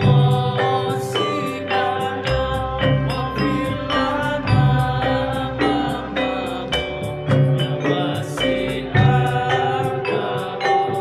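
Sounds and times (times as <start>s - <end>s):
frame drums beating: 0.0s - 11.0s
men singing a chant: 0.0s - 11.0s.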